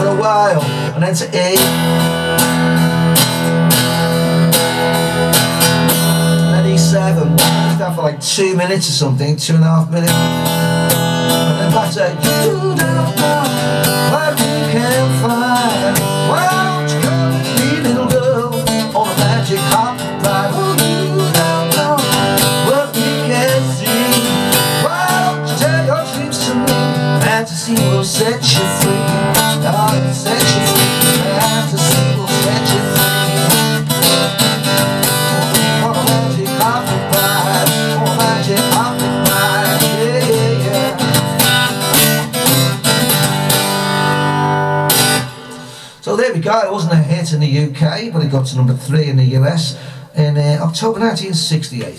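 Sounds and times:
acoustic guitar strumming: 0.0s - 46.7s.

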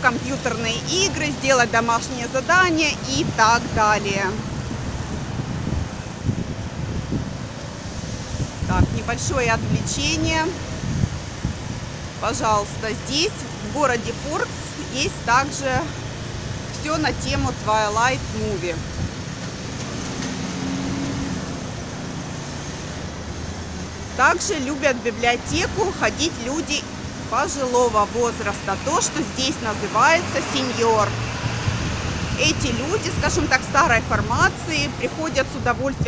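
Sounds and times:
steady road noise: 0.0s - 36.0s
wind buffeting microphone: 0.0s - 36.0s
passing car engine hum: 13.2s - 35.2s.

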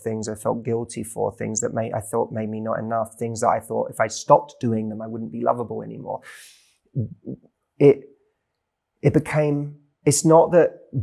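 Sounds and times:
man speaking: 0.0s - 8.0s, 9.0s - 11.0s.

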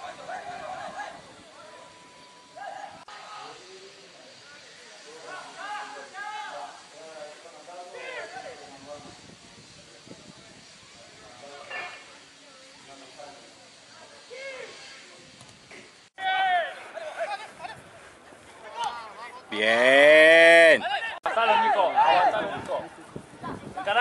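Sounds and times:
distant shouting voices: 0.0s - 8.7s, 16.2s - 17.8s, 18.6s - 22.9s
steady hiss: 0.0s - 24.0s.

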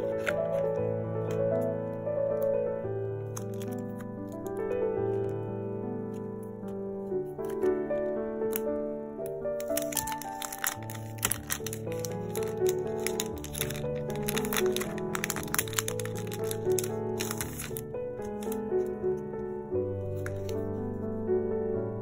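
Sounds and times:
plastic packaging crinkling: 0.0s - 0.8s, 3.2s - 5.4s, 9.3s - 19.0s, 20.0s - 20.8s
piano music: 0.0s - 22.0s.

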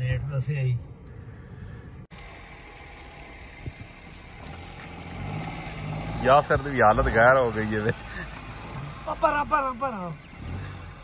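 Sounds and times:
small car engine humming: 0.8s - 11.0s.

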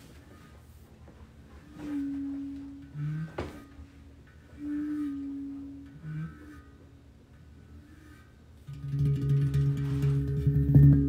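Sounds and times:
handpan notes ringing: 1.8s - 4.0s, 8.0s - 11.0s.

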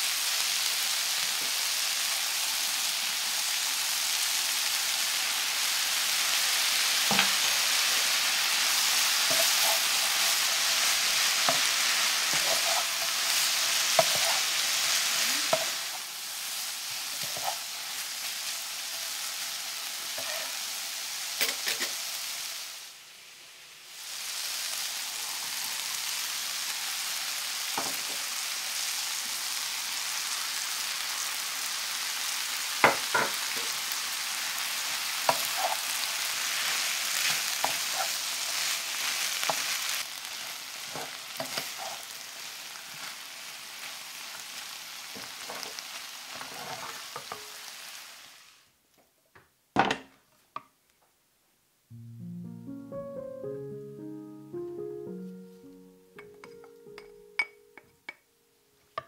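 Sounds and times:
vegetables sizzling in a frying pan: 0.0s - 48.8s
wooden spatula scraping a pan: 9.1s - 14.7s, 17.1s - 17.8s, 35.3s - 35.9s, 36.5s - 40.0s, 40.8s - 42.1s, 45.2s - 47.4s.

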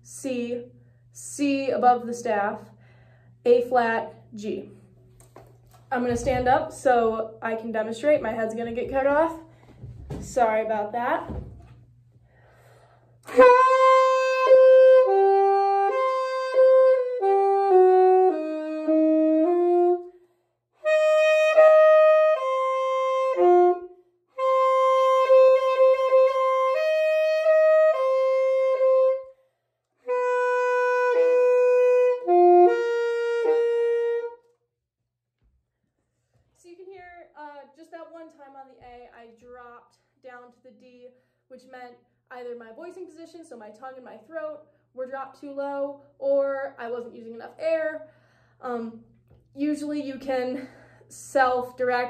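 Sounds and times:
alto saxophone long notes: 13.2s - 29.4s, 30.0s - 34.5s.

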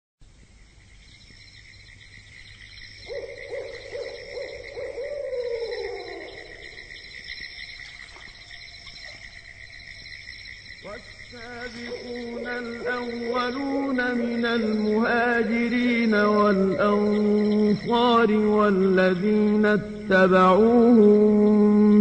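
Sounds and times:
high insect trilling: 0.6s - 20.1s
owl-like low hooting call: 3.0s - 7.1s, 11.4s - 15.3s.

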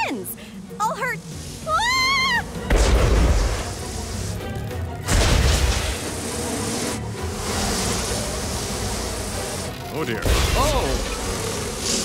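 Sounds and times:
cartoon swarm of flies: 0.0s - 12.0s
music: 0.0s - 12.0s.

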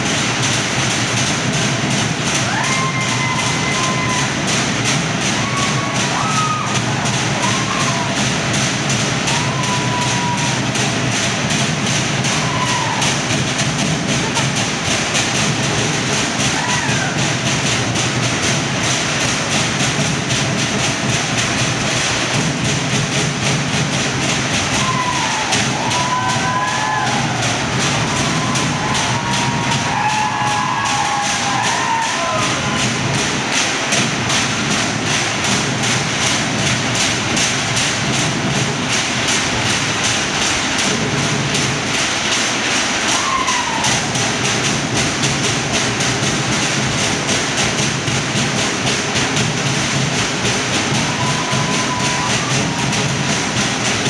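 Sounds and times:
fast driving drumming: 0.0s - 54.0s
high whoops: 2.4s - 4.5s, 5.3s - 8.2s, 9.2s - 10.8s, 12.2s - 13.3s, 16.5s - 17.2s, 24.7s - 32.9s, 43.0s - 44.1s, 50.9s - 52.9s.

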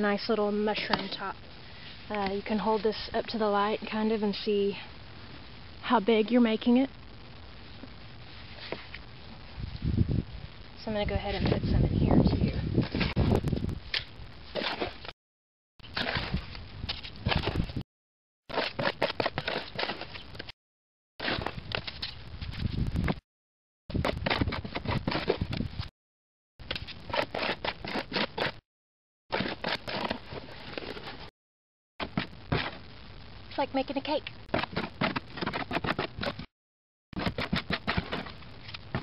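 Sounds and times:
trowel scraping wet concrete: 14.5s - 15.1s, 15.8s - 17.6s, 18.5s - 20.2s, 26.7s - 28.6s, 29.3s - 31.3s.

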